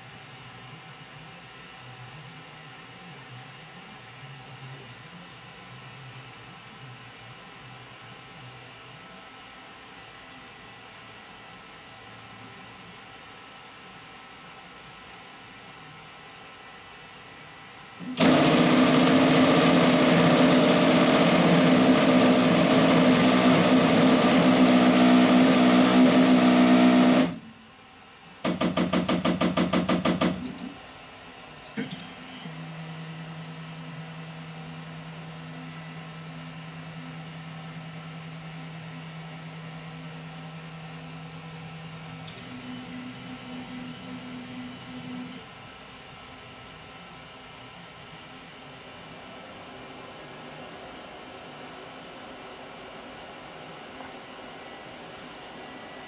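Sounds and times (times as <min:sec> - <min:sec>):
steady motor hum: 0:18.0 - 0:27.6, 0:31.6 - 0:45.5
printer grinding knock: 0:28.4 - 0:30.6
fast even knocking: 0:28.5 - 0:30.5.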